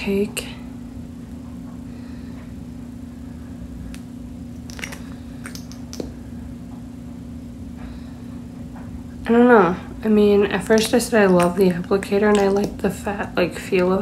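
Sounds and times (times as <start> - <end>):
low steady hum: 0.0 - 14.0
wet lip clicks: 4.6 - 6.1.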